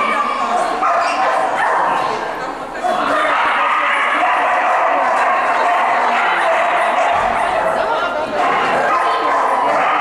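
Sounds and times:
people talking: 0.0 - 10.0
dog barking: 0.8 - 2.1, 3.2 - 7.7, 8.4 - 10.0.

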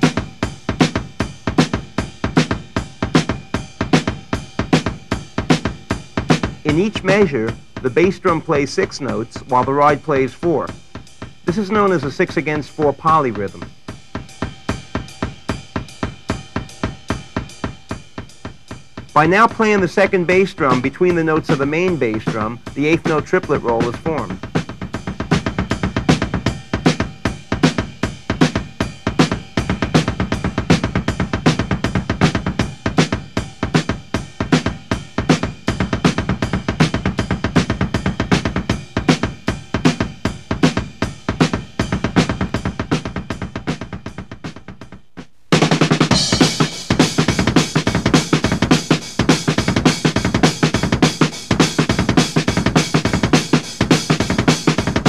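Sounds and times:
snare drum backbeat: 0.0 - 10.7, 19.1 - 55.0
double bass drum triplets: 0.0 - 55.0
drum fills: 0.0 - 55.0.

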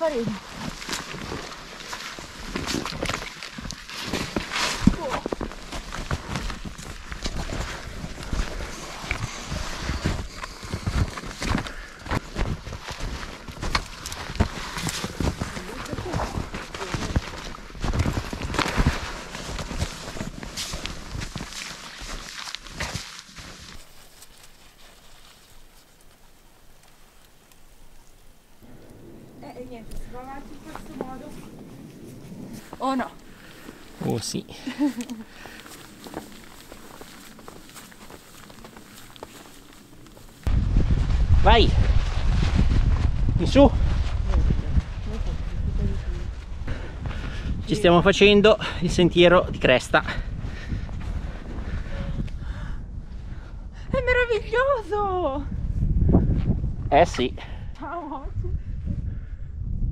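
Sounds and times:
footsteps crunching in snow: 0.0 - 28.2, 30.0 - 48.6
branches scraping against clothing: 0.0 - 28.8, 29.5 - 40.5.

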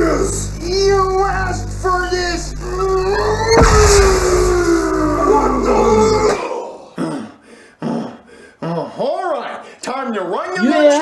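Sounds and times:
cartoon energy blast effect: 2.6 - 6.3
loud rumbling whoosh: 3.5 - 5.8.

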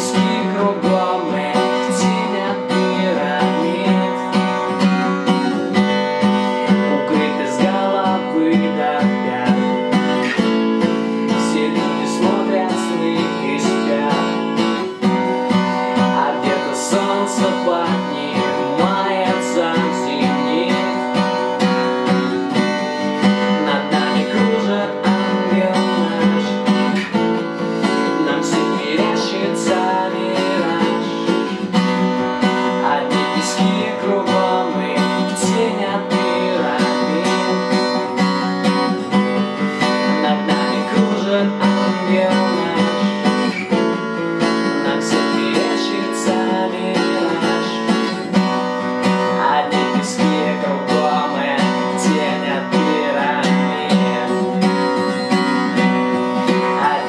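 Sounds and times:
acoustic guitar strumming: 0.0 - 57.0
man singing: 0.0 - 57.0.

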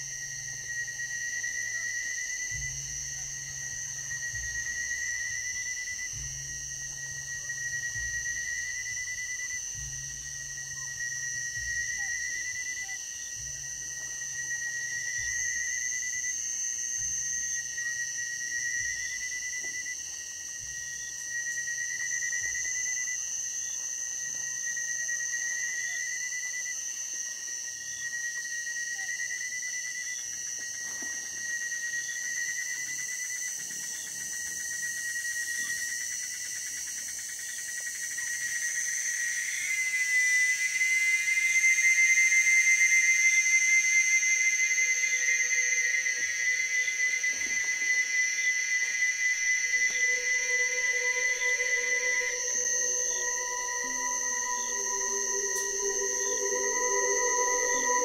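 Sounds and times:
ambient electronic music: 49.3 - 58.0.

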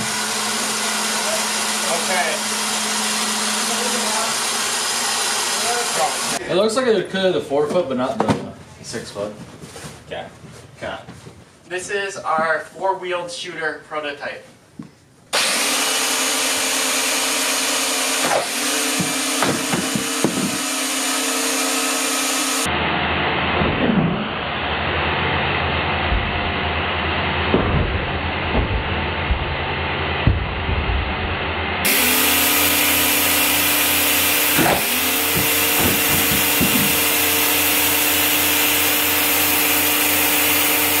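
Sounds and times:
electric motors whining: 0.0 - 6.4, 15.4 - 22.7, 31.8 - 41.0
knocks and thumps on wood: 18.2 - 20.7, 27.5 - 31.4, 34.5 - 37.3.

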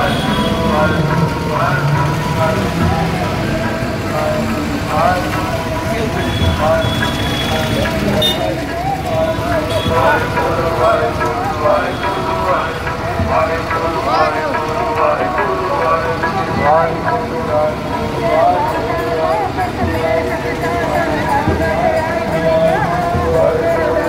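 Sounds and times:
people's voices: 0.0 - 24.0
vehicle engine running: 0.0 - 24.0.

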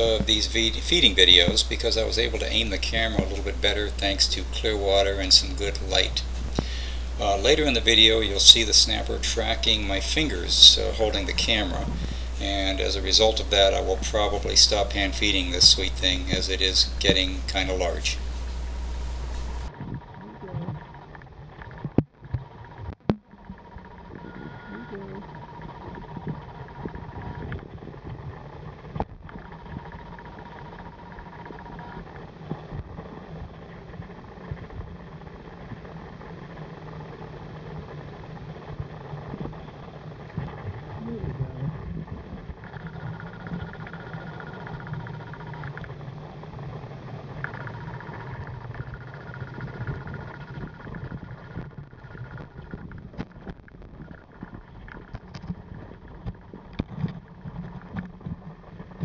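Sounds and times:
faint whine: 0.0 - 59.0
underwater rumble: 0.0 - 59.0.

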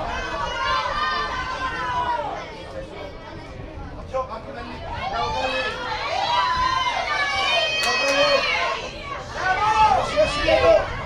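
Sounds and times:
spectators and players shouting: 0.0 - 2.7, 4.8 - 11.0.

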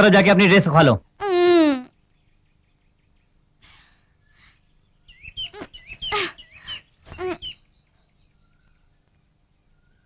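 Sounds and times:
birds chirping and whistling: 2.2 - 10.0.

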